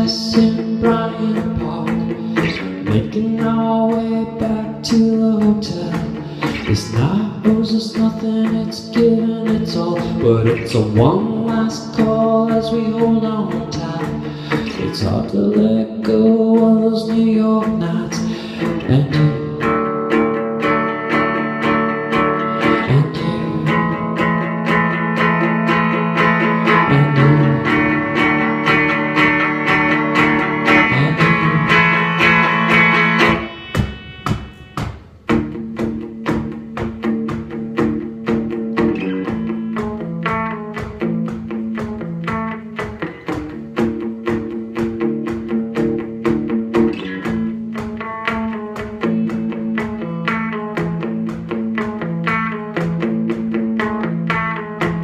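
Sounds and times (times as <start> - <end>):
electric guitar playing: 0.0 - 55.0.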